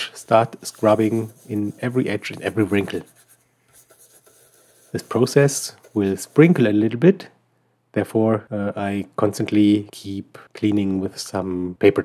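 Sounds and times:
toothbrush scrubbing: 0.0s - 6.7s.

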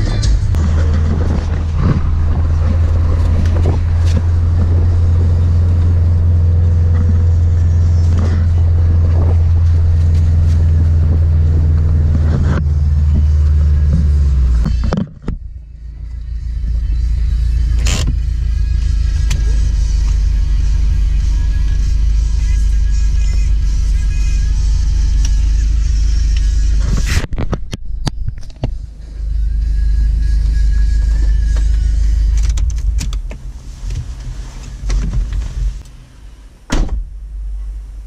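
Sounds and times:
music in car: 0.0s - 36.1s
road and engine rumble in car: 0.0s - 38.0s.

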